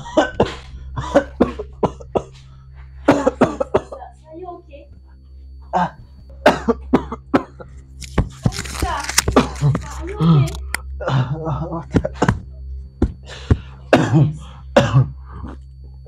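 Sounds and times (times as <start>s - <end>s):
man coughing: 0.0s - 2.4s, 3.0s - 4.1s, 5.8s - 7.7s, 13.6s - 15.6s
steady low hum: 0.0s - 16.0s.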